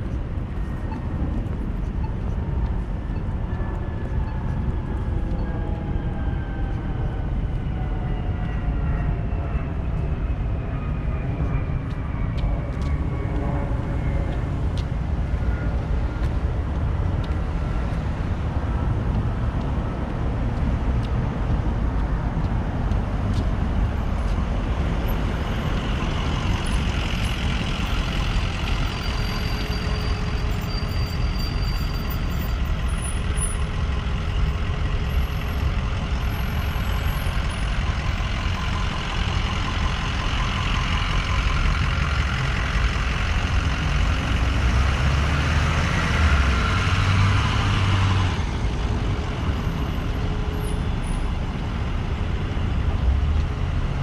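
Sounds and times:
traffic engine rumble: 0:00.0 - 0:54.0.

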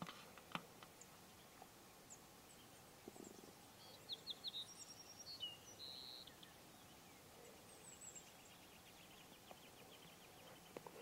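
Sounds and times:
songbird chirping and trilling: 0:00.9 - 0:11.0.

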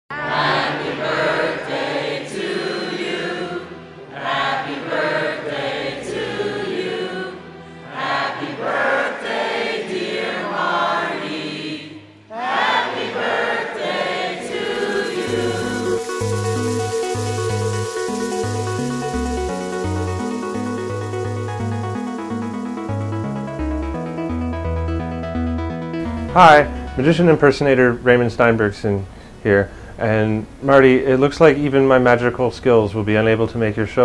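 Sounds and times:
crowd singing in unison: 0:00.1 - 0:21.6
electronic dance music: 0:14.5 - 0:27.4.

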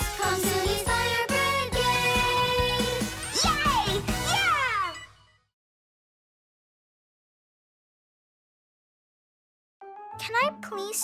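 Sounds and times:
high voices singing: 0:00.0 - 0:04.4
cartoon song music: 0:00.0 - 0:05.2.

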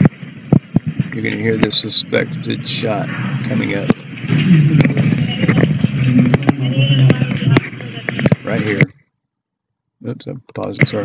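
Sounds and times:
low rumble: 0:00.0 - 0:08.9.

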